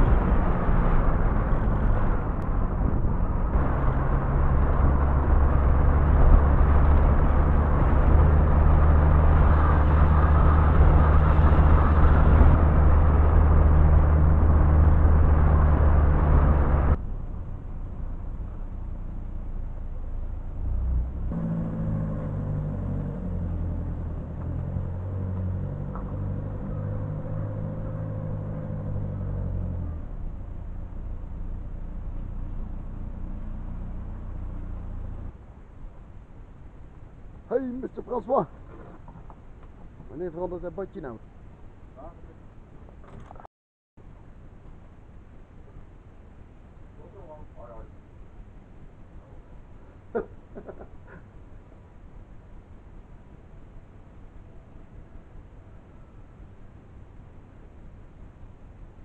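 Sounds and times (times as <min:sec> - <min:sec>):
road and wind noise: 0:00.0 - 0:59.0
vehicle engine hum: 0:00.0 - 0:59.0.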